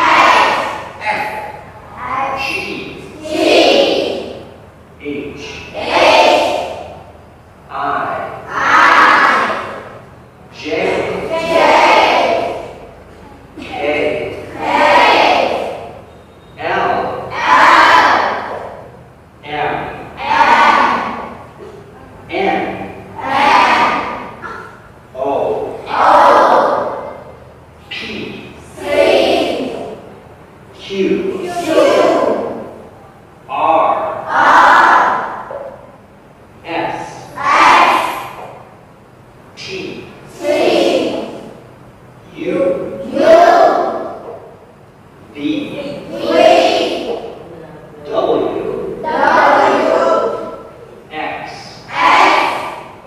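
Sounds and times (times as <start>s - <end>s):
children speaking in chorus: 0.0s - 1.3s, 8.5s - 9.7s, 10.7s - 12.8s, 16.7s - 18.6s, 31.4s - 32.7s, 34.2s - 35.4s, 37.3s - 38.4s, 45.8s - 47.4s, 49.0s - 50.7s, 51.9s - 53.0s
children repeating in chorus: 0.0s - 35.9s, 36.6s - 38.8s, 39.6s - 41.6s, 42.3s - 53.0s.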